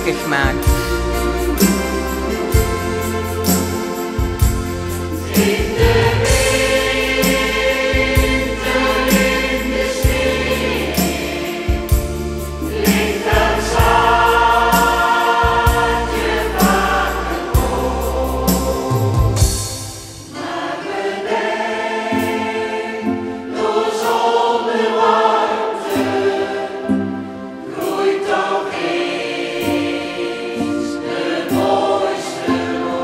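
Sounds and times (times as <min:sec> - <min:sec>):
choir singing with instruments: 0:00.0 - 0:33.0.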